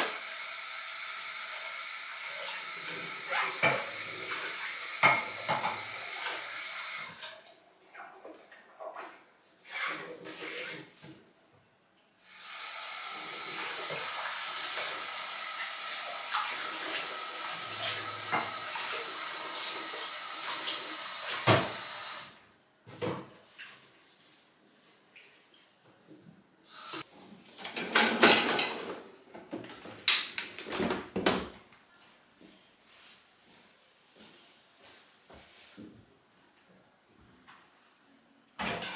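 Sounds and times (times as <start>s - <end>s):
kitchen tap running: 0.0s - 7.5s, 12.2s - 22.4s.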